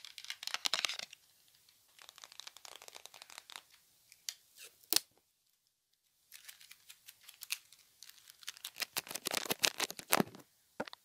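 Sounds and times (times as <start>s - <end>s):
adhesive tape crackling: 0.0s - 3.8s, 6.3s - 10.4s
crackly object handling: 0.0s - 11.0s.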